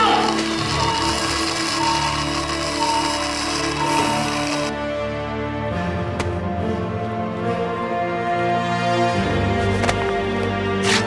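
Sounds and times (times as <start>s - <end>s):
sustained background music tones: 0.0s - 11.0s.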